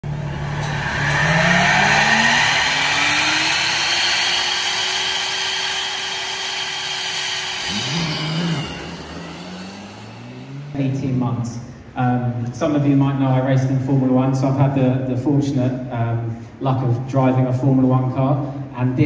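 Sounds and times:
petrol engine revving: 0.0s - 12.0s
electric fans whine: 0.0s - 19.0s.

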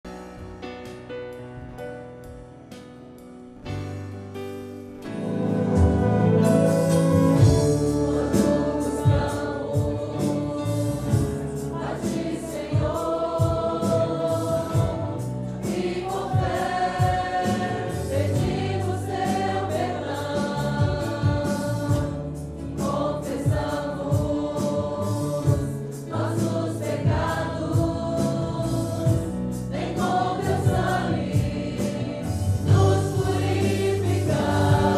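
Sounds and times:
congregation singing a hymn: 0.0s - 2.4s, 4.9s - 34.9s
band with drums and guitars: 0.0s - 34.9s.

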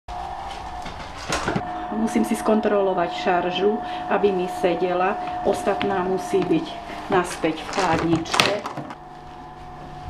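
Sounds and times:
steady hum: 0.1s - 10.0s
plastic clatter and rustling: 7.6s - 9.0s.

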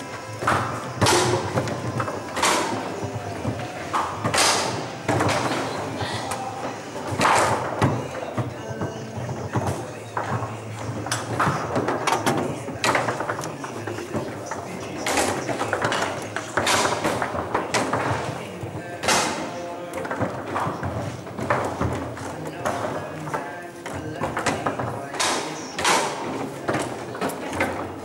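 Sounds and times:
background voices: 0.0s - 28.0s
foosball ball knocks: 0.0s - 28.0s.

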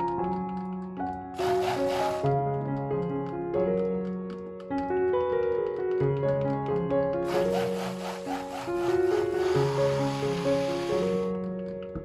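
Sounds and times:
background piano music: 0.0s - 12.0s
stick blender whirring: 1.4s - 2.3s, 7.3s - 11.3s.

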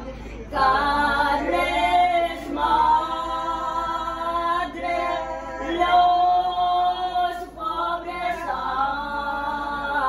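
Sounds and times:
women singing unaccompanied: 0.5s - 10.0s.

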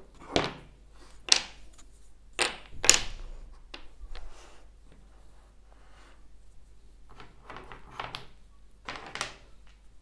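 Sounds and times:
wooden toy blocks knocking: 7.1s - 9.8s.

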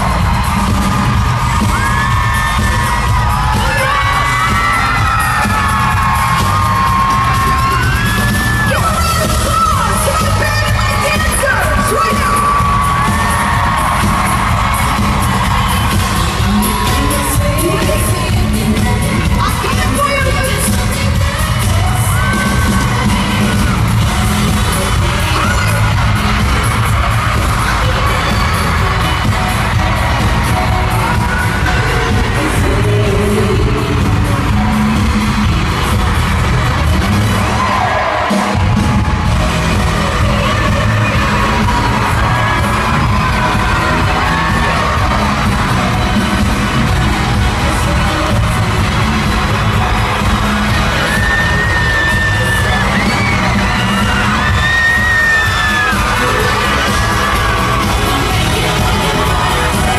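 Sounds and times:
crowd cheering: 0.0s - 59.9s
live pop song over sound system: 0.0s - 59.9s
female lead vocal: 16.6s - 26.2s, 30.7s - 35.2s, 39.8s - 45.2s, 55.9s - 59.9s.

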